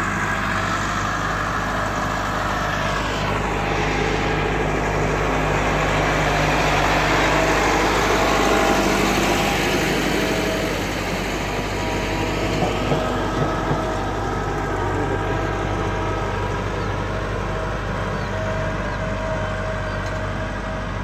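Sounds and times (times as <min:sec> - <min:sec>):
tractor diesel engine running: 0:00.0 - 0:21.0.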